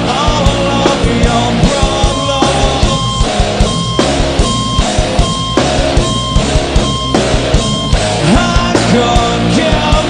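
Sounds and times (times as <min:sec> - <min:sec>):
electric guitar riff: 0:00.0 - 0:10.0
drum hits: 0:00.2 - 0:10.0.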